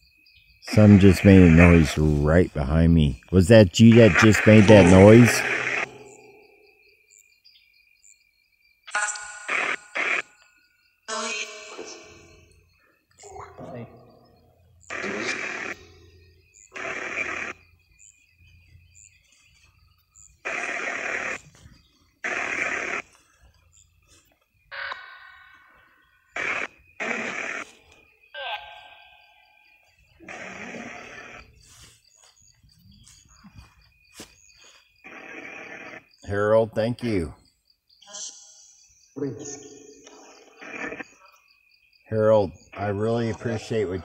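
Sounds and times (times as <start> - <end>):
garbled voice fragments: 0.7 - 6.3
static noise bursts: 0.7 - 6.3, 9.5 - 10.3, 14.8 - 16.0, 16.6 - 17.6, 20.3 - 21.6, 22.2 - 23.2, 26.4 - 27.7, 30.2 - 31.6, 35.0 - 36.1, 40.5 - 41.1.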